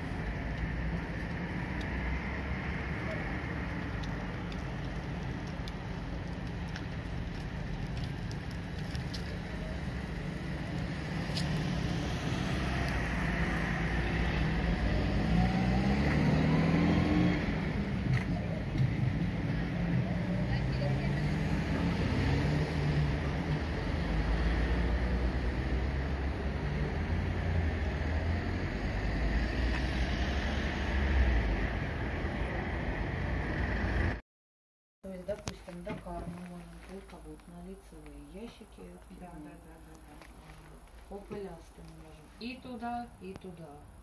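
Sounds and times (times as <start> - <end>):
heavy vehicle rumble: 0.0 - 34.2
traffic driving past: 0.0 - 34.2
vehicle accelerating: 9.8 - 34.2.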